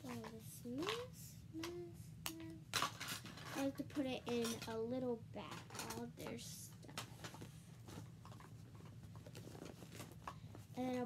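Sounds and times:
faint low hum: 0:00.0 - 0:11.0
plastic bag rustling: 0:06.9 - 0:11.0.

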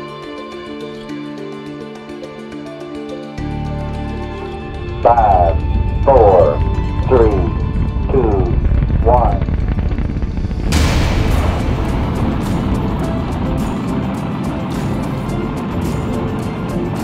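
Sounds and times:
rocket engine roar with crackling: 0:03.9 - 0:17.0.

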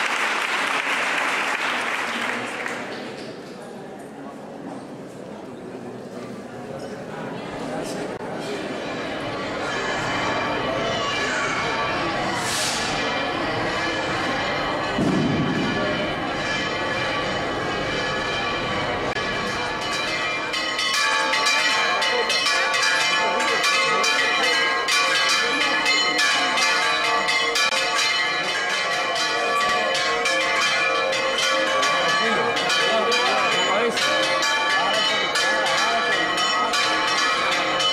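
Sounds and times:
church bells pealing: 0:08.2 - 0:37.9.

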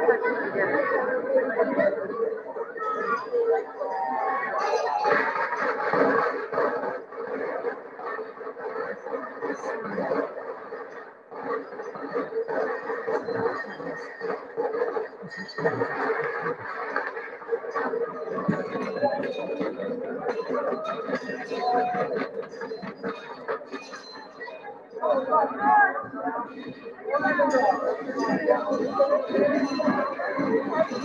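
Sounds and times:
crowd chatter and bustle: 0:00.0 - 0:31.0.

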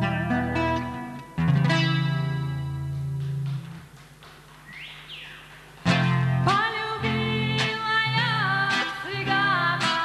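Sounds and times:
acoustic guitar chord ringing: 0:00.0 - 0:03.3.

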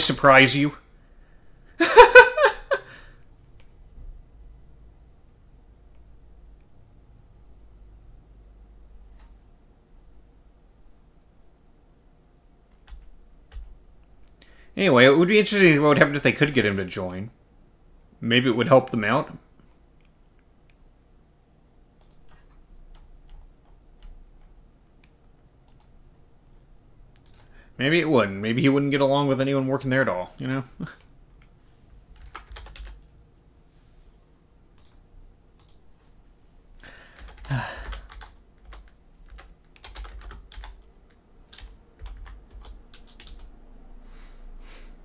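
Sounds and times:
man speaking: 0:00.0 - 0:00.8, 0:14.8 - 0:17.4, 0:18.2 - 0:19.5, 0:27.8 - 0:31.0
computer keyboard typing: 0:12.7 - 0:13.8, 0:22.0 - 0:26.0, 0:27.2 - 0:27.5, 0:32.1 - 0:33.1, 0:37.1 - 0:43.5
faint clicks: 0:22.0 - 0:23.4, 0:27.1 - 0:27.5.

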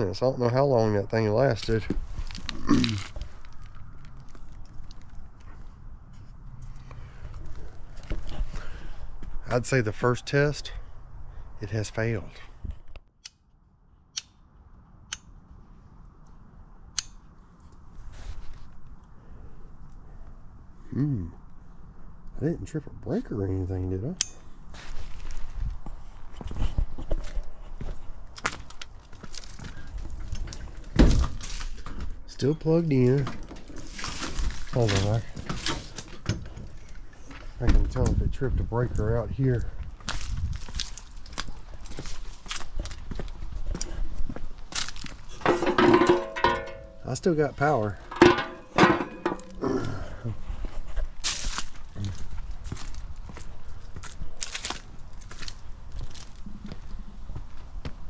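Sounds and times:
footsteps on dry leaves: 0:24.7 - 0:26.0, 0:39.9 - 0:45.4, 0:51.2 - 0:57.6.

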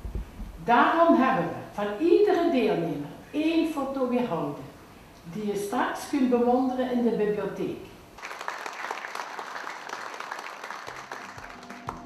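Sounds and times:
audience applauding: 0:08.2 - 0:12.0.

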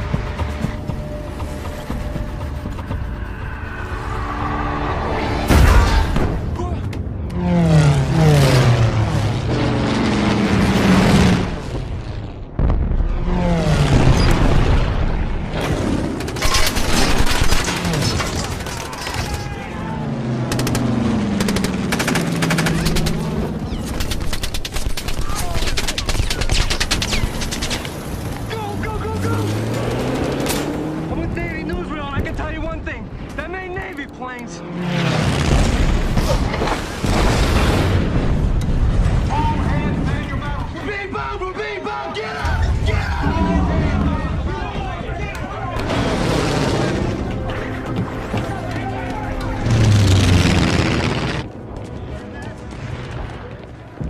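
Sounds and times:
rapid machine-gun fire: 0:20.5 - 0:27.8
propeller warplanes passing over: 0:46.6 - 0:54.0.

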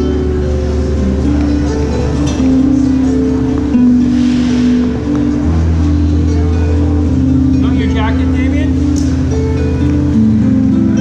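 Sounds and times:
harp playing slow tune: 0:00.0 - 0:11.0.

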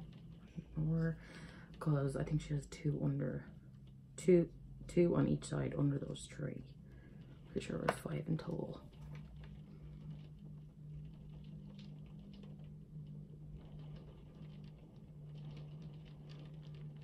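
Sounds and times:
faint rain pattering: 0:00.0 - 0:17.0
steady low hum: 0:00.0 - 0:17.0.

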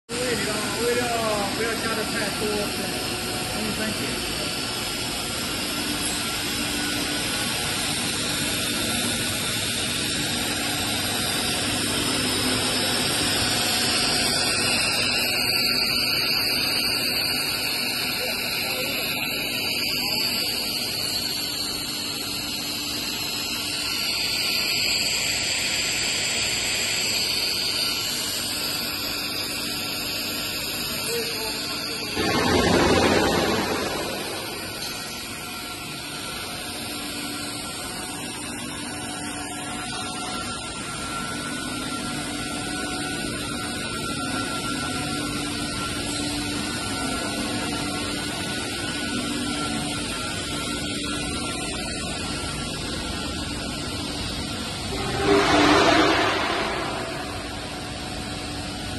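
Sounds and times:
pipe extrusion machine running: 0:00.1 - 0:58.9
rushing surge: 0:54.9 - 0:58.0.

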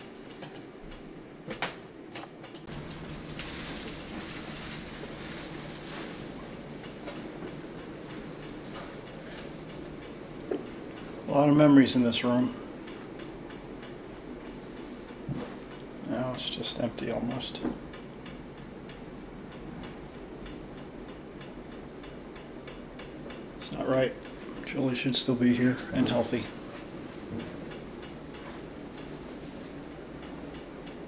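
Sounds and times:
low rumble of room noise: 0:00.0 - 0:31.0
quiet steady ticking: 0:06.4 - 0:31.0.

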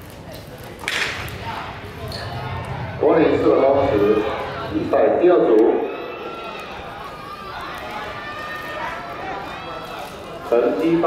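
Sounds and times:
open-air stadium hum: 0:00.0 - 0:11.0.

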